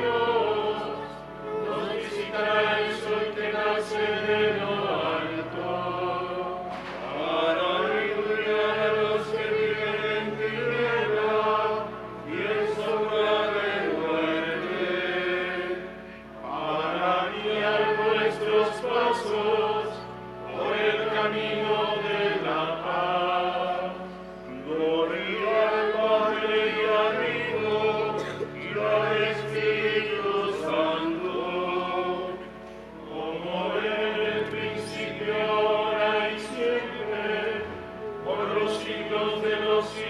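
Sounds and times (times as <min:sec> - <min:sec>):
voices singing chant-like hymn: 0:00.0 - 0:40.0.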